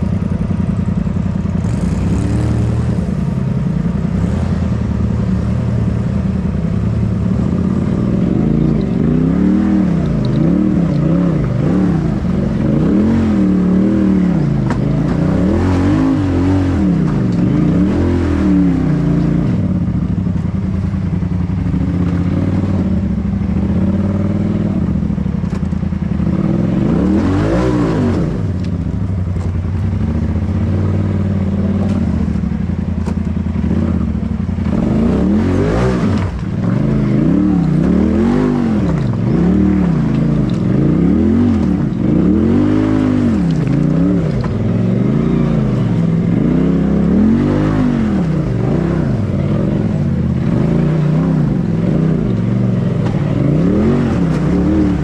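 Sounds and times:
engine revving: 0.0 - 55.0.

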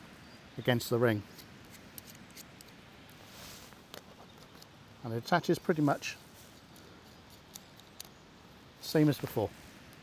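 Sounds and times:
person speaking: 5.0 - 6.3, 8.8 - 9.6.

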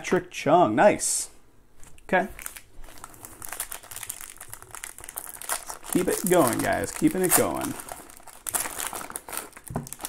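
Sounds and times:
foil card pack crinkling: 2.4 - 10.0.

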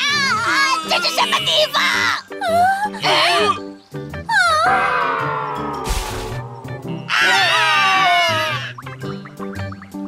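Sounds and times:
background music: 0.0 - 10.0
squealing cartoon creature cries: 4.3 - 5.8, 7.0 - 8.8.

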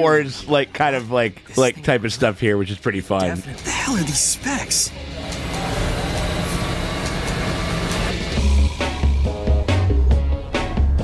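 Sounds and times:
heavy bass music: 3.6 - 11.0.

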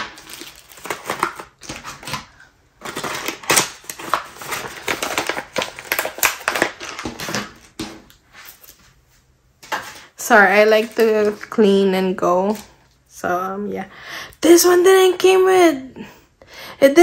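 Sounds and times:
packaging pouch crinkling: 0.0 - 7.8.

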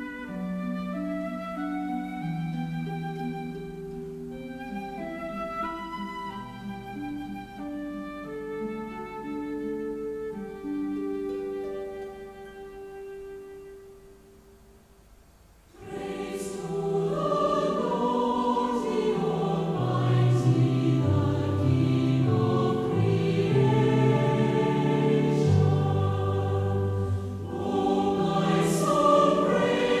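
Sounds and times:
choir singing a hymn: 15.7 - 30.0.

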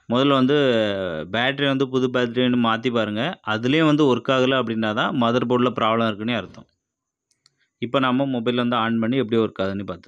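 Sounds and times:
man talking: 0.0 - 6.7, 7.8 - 10.0.

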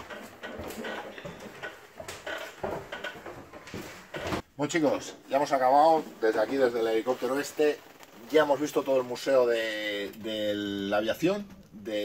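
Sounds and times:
footsteps on metal floor: 0.0 - 4.5.

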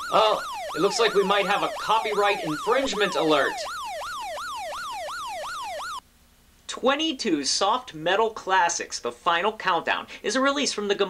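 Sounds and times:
electronic siren yelp: 0.0 - 6.0.

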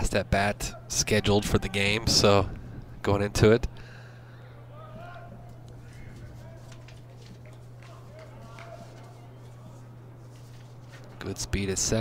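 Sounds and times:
steady low hum: 0.0 - 12.0
faint distant voices: 4.2 - 11.6.

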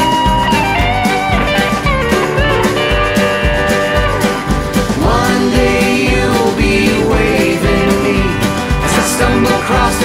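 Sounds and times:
country band instrumental: 0.0 - 10.0
drum kit beat: 0.0 - 10.0.

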